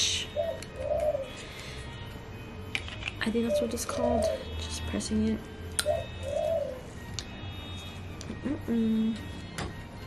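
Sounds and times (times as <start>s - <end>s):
dove cooing: 0.2s - 1.8s, 3.4s - 4.6s, 5.8s - 7.0s.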